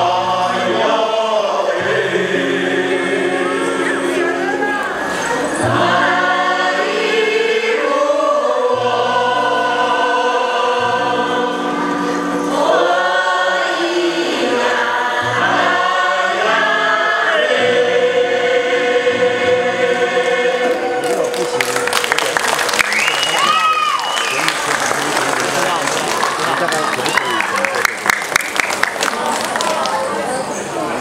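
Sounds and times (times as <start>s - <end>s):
choir singing unaccompanied in harmony: 0.0s - 21.3s.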